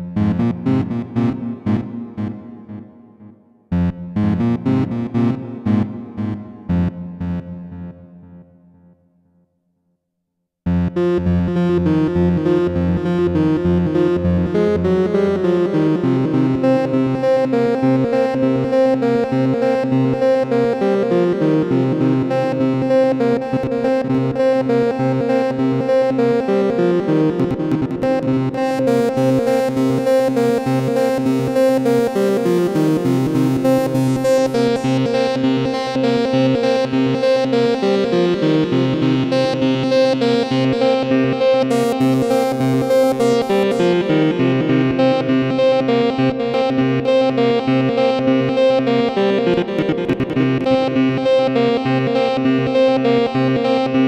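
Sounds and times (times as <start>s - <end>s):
synthesizer pulsing line of notes: 26.3s - 45.4s.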